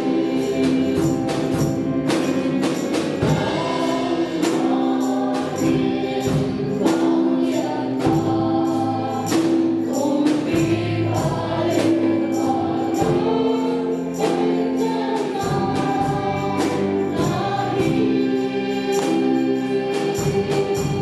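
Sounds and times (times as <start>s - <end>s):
band with guitars and beat: 0.0s - 21.0s
women singing a hymn: 0.0s - 21.0s.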